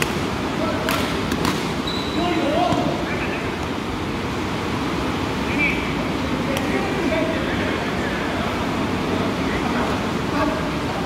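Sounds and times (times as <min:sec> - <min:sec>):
steady noisy background: 0:00.0 - 0:11.0.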